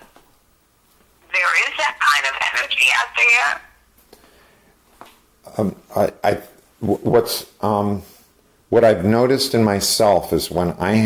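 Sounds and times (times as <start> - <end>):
person talking over speakerphone: 1.2 - 3.7.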